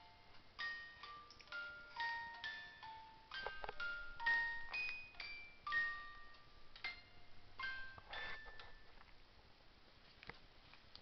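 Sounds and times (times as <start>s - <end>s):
toy bell-like chime notes: 0.0s - 8.9s.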